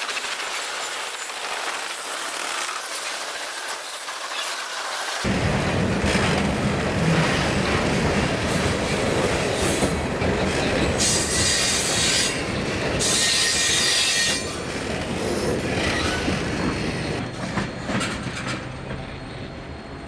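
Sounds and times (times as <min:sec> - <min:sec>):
freight train wheels rumbling: 0:00.0 - 0:20.0.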